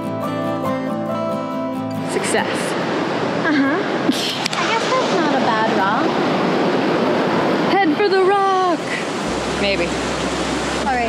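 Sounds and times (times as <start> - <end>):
river water running over rocks: 1.9 - 11.0
low rumble: 9.2 - 11.0.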